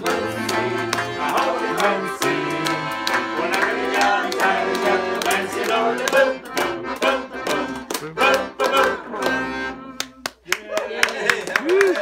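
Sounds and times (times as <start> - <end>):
piano accordion playing: 0.0 - 10.3
hand-clapping: 0.0 - 12.0.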